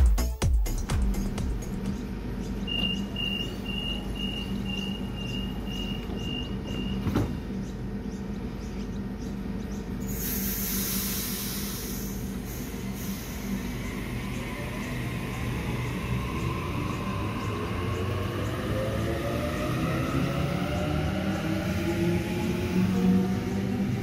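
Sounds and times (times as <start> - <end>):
electric train humming: 0.0 - 24.0
high door warning beeps: 2.6 - 7.2
train doors shutting knock: 2.6 - 7.7
loud hiss of air: 10.1 - 14.3.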